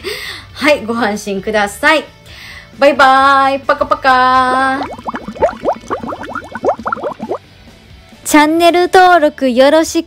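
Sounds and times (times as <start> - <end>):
bubbling blips: 4.4 - 7.5.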